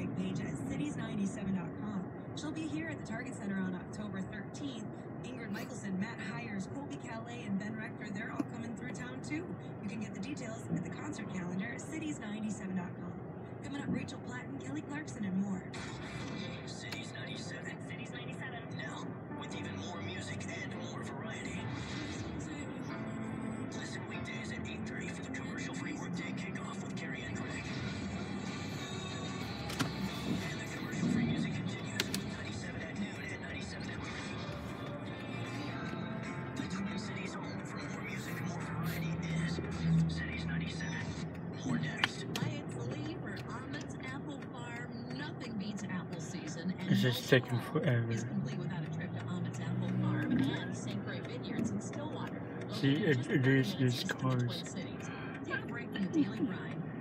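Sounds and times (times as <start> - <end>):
music with singing on car radio: 0.0 - 57.0.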